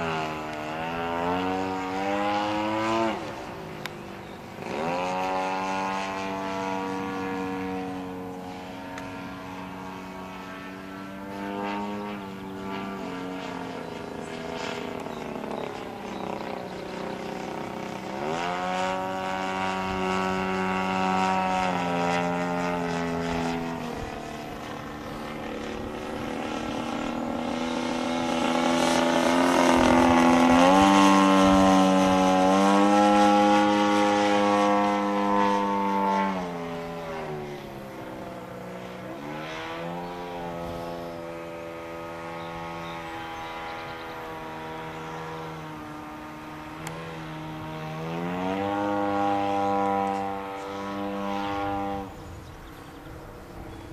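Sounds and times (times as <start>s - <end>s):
model plane engine and propeller: 0.0s - 53.9s.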